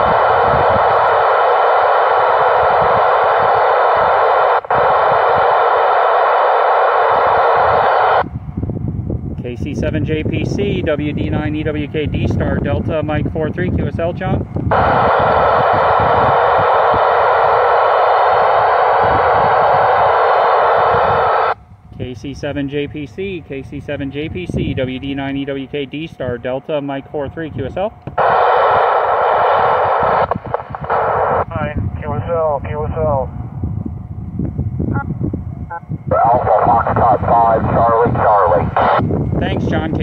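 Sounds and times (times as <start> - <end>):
radio receiver hiss: 0.0 - 8.3, 14.7 - 22.1, 28.1 - 33.3, 36.1 - 40.0
faint low rumble: 0.0 - 40.0.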